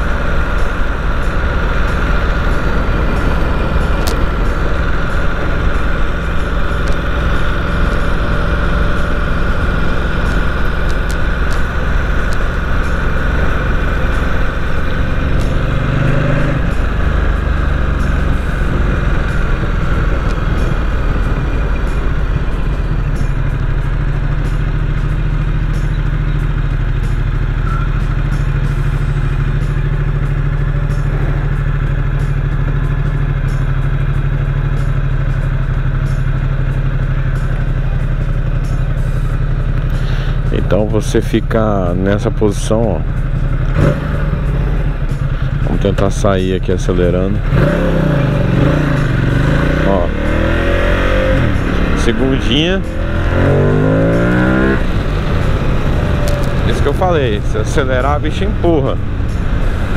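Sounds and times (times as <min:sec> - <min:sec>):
motorcycle engine riding slowly: 0:00.0 - 0:59.9.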